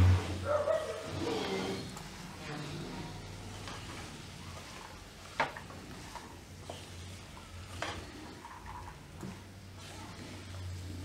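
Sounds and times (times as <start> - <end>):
spatula stirring beans: 1.1 - 11.0
green beans frying in a pan: 3.2 - 11.0.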